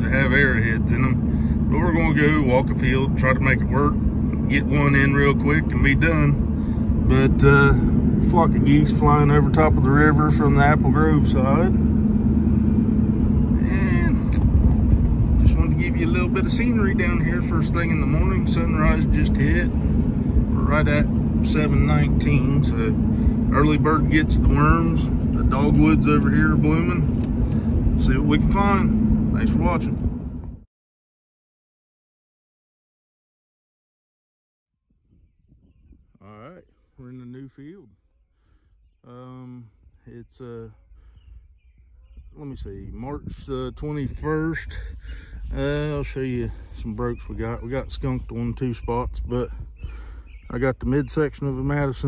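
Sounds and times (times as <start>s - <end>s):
vehicle road and engine rumble: 0.0s - 30.7s, 35.4s - 52.0s
faint bird chirps: 34.8s - 44.2s, 46.4s - 51.7s.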